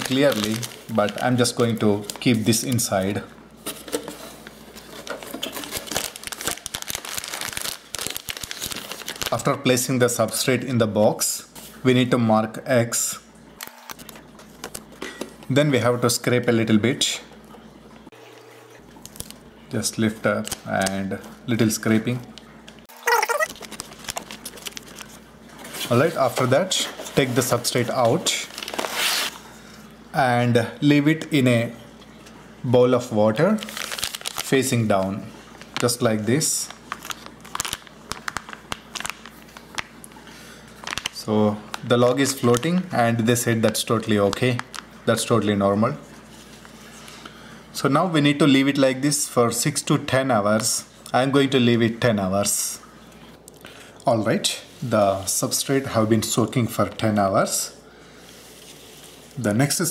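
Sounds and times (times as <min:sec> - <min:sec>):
plastic wrapping crackling: 0:00.0 - 0:03.0, 0:04.8 - 0:10.3, 0:23.0 - 0:29.3, 0:33.4 - 0:42.8, 0:43.5 - 0:45.3
fork scratching plastic film: 0:28.6 - 0:29.3.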